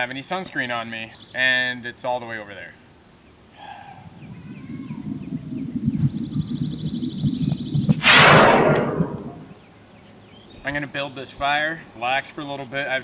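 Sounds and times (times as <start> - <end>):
low rustling rumble: 4.0 - 9.5.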